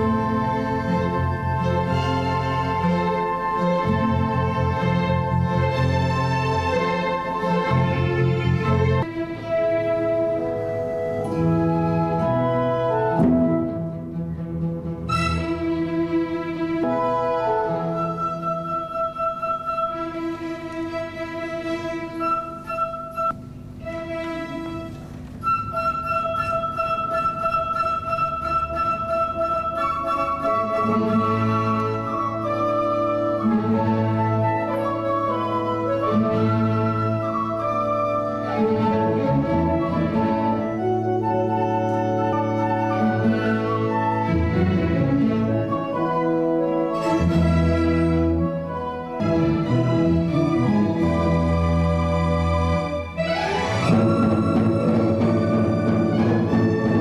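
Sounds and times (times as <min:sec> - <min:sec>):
flute long held notes: 0:00.0 - 0:14.2, 0:16.8 - 0:57.0
orchestra playing slow passage: 0:00.0 - 0:57.0.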